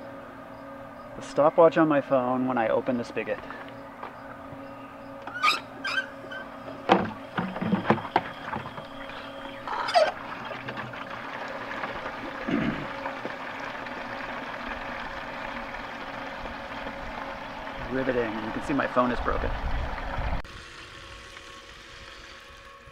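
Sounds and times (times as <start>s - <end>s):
hose water filling watering can: 5.3s - 22.9s.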